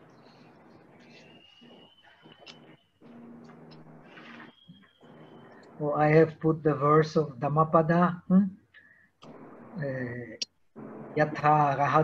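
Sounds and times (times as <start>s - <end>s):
man speaking: 5.8s - 8.6s, 9.8s - 10.4s, 11.2s - 12.0s.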